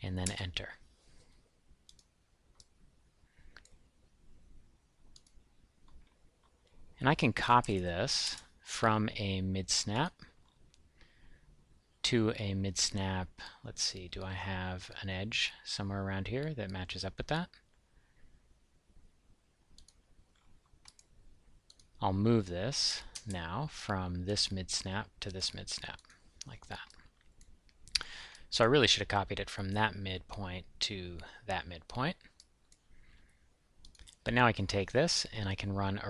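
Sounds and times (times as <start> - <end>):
faint computer mouse clicks: 1.9 - 2.7, 3.5 - 3.8, 5.1 - 6.8, 19.8 - 21.1.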